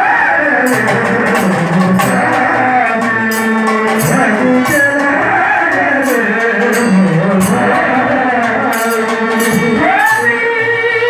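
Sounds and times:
devotional song with held tones: 0:00.0 - 0:11.0
hand drum: 0:00.7 - 0:10.5
bright percussion strikes: 0:00.7 - 0:10.7.

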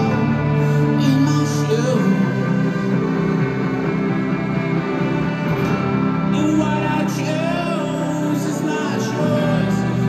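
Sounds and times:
live rock band with guitar: 0:00.0 - 0:10.0.

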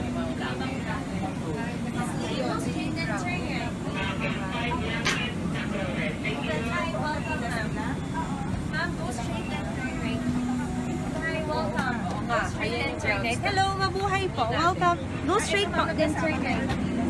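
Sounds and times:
crowd chatter: 0:00.0 - 0:17.0
steady low hum: 0:00.0 - 0:17.0.

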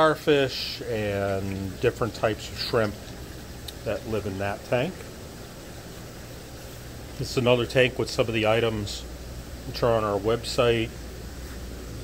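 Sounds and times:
aquarium pumps humming: 0:00.0 - 0:12.0
circulating water: 0:00.3 - 0:12.0.

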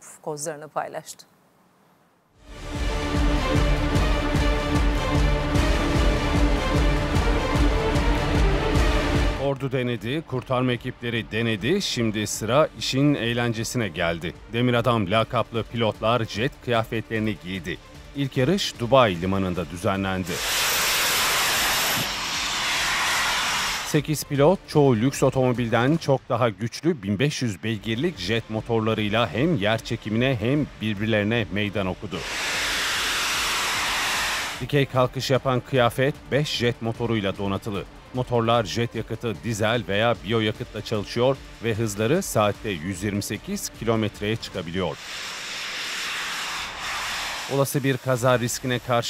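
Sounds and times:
jet engines hissing: 0:19.6 - 0:24.3, 0:31.9 - 0:34.9, 0:44.6 - 0:49.0.

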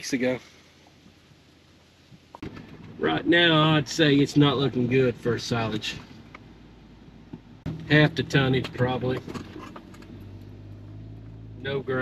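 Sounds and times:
road noise inside cab: 0:00.0 - 0:12.0
vehicle engine hum: 0:00.0 - 0:12.0.

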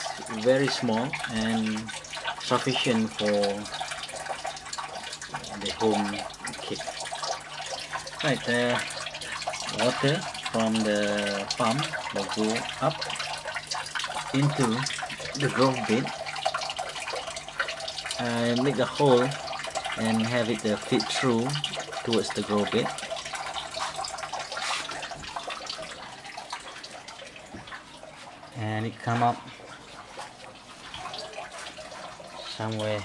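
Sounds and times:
water running and splashing: 0:00.0 - 0:33.0.

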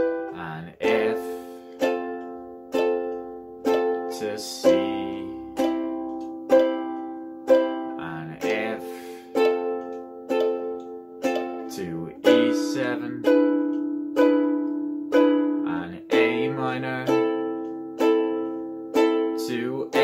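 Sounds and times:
ukulele strumming chords: 0:00.0 - 0:20.0.

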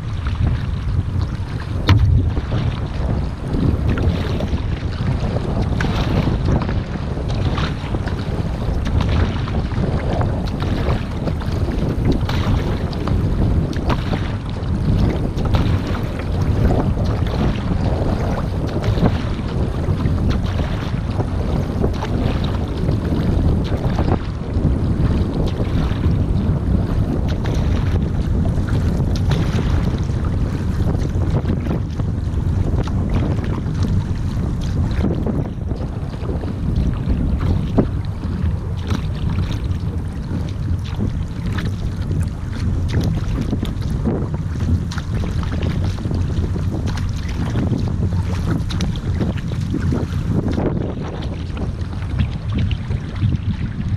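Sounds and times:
paddle blades splashing: 0:00.0 - 0:53.9
water running along hull: 0:00.0 - 0:53.9
wind rumbling on microphone: 0:00.0 - 0:53.9.

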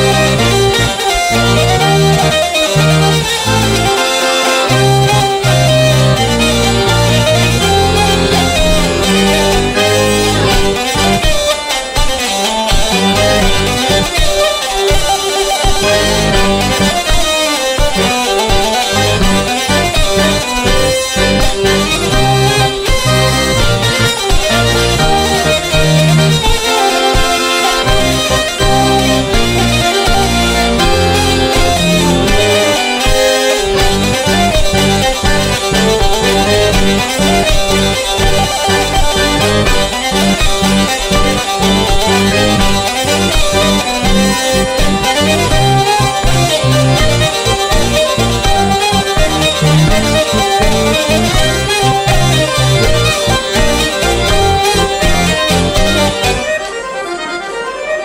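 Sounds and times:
button accordion: 0:00.0 - 0:58.0
hurdy-gurdy: 0:00.0 - 0:58.0.

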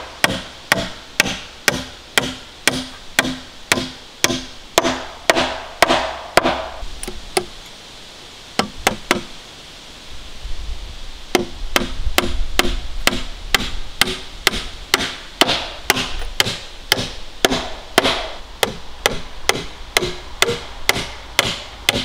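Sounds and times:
hammer striking nails into wood: 0:00.2 - 0:06.7, 0:11.4 - 0:22.0.

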